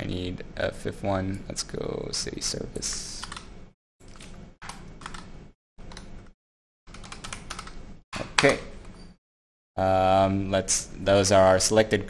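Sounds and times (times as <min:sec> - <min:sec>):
typing on computer keyboard: 0:06.9 - 0:07.8.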